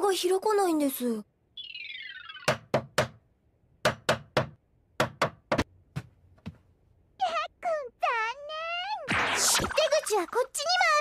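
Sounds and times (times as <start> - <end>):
sharp knocks on wood: 3.8 - 6.1.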